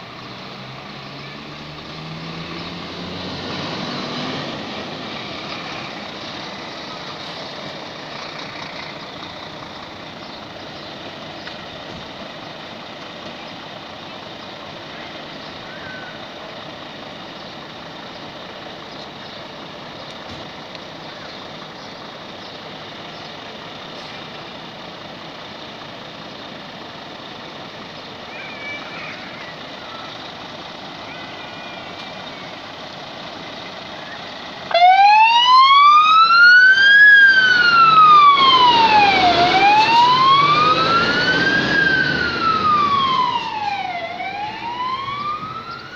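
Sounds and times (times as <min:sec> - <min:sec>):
fire engine running: 0:00.0 - 0:45.9
siren wailing: 0:34.7 - 0:45.9.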